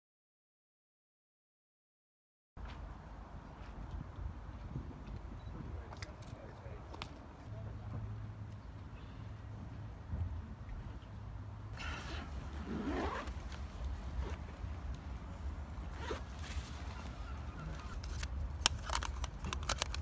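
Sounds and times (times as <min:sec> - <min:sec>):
bag zip opening: 0:11.8 - 0:13.5, 0:14.2 - 0:14.4, 0:15.9 - 0:16.6
camera gear handling: 0:17.8 - 0:20.0.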